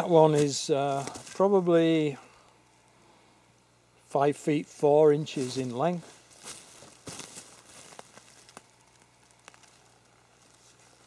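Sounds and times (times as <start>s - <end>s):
rustling and shuffling: 0.0s - 1.8s, 5.1s - 11.0s.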